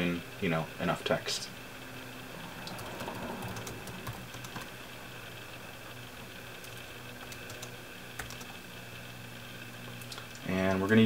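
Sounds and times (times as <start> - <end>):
keyboard typing: 2.6 - 4.7, 6.6 - 8.6.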